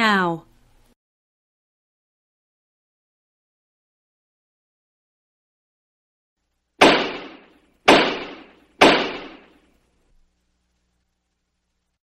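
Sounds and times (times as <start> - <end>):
loud sharp impacts echoing: 6.8 - 9.6.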